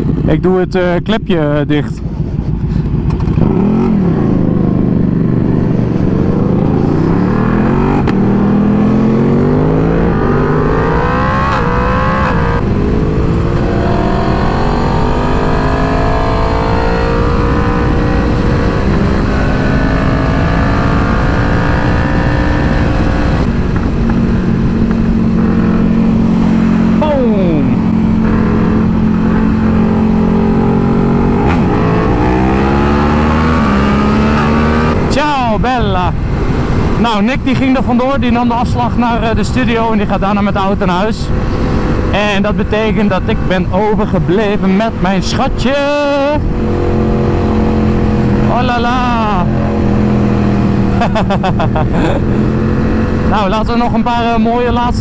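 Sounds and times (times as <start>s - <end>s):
motorcycles accelerating through gears: 2.3s - 37.1s, 44.2s - 54.9s.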